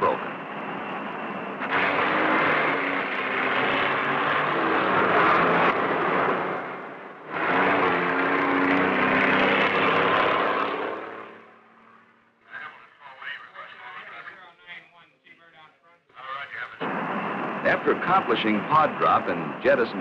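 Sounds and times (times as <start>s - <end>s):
loud engine noise: 0.0s - 12.5s, 16.8s - 20.0s.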